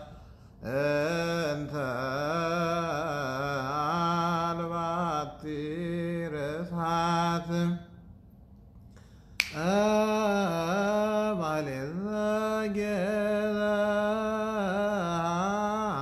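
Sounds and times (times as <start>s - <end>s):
man chanting solo: 0.0s - 7.8s, 9.6s - 16.0s.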